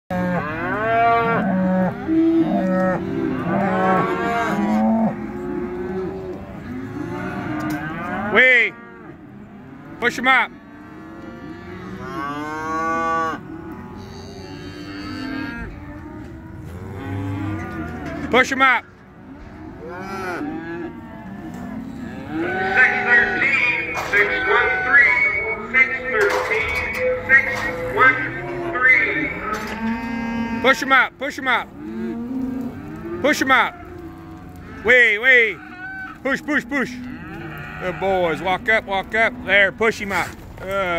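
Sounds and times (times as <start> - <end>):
cattle mooing and bawling: 0.1 - 40.9.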